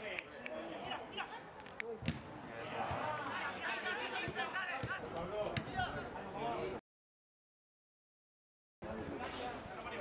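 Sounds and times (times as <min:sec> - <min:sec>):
ball being kicked: 0:02.0 - 0:03.0.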